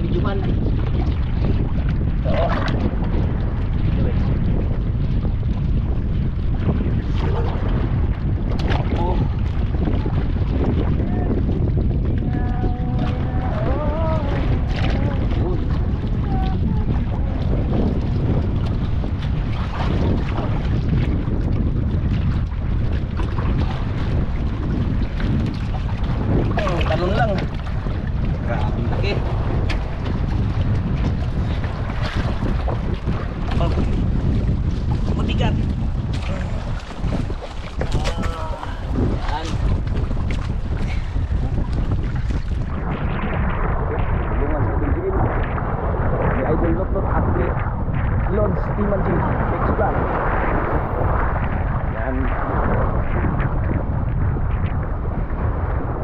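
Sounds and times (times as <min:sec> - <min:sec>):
people talking: 0:00.0 - 0:00.5, 0:02.3 - 0:02.6, 0:09.0 - 0:09.3, 0:11.1 - 0:11.4, 0:12.3 - 0:17.4, 0:26.6 - 0:27.5, 0:28.4 - 0:29.3, 0:33.6 - 0:33.9, 0:35.2 - 0:35.6, 0:38.0 - 0:39.6, 0:43.9 - 0:45.2, 0:48.3 - 0:50.0, 0:52.0 - 0:52.3
wind buffeting microphone: 0:00.0 - 0:56.0.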